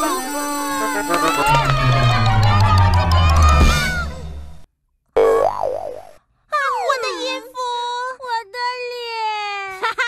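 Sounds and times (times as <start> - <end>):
loud sound dying away: 0.6 - 4.7
cartoon boing: 5.2 - 6.2.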